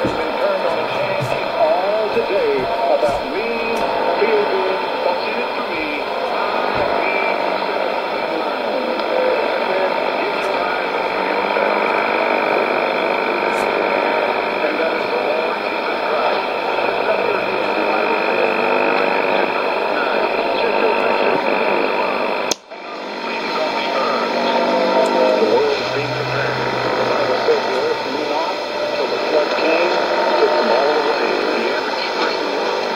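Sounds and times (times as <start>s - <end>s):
man speaking over radio: 0.0s - 32.9s
radio static: 0.0s - 32.9s.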